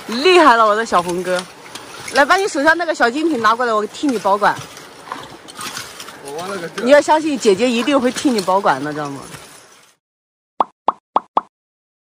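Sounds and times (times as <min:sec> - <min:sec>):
cartoon pop sound effects: 0:10.6 - 0:11.5.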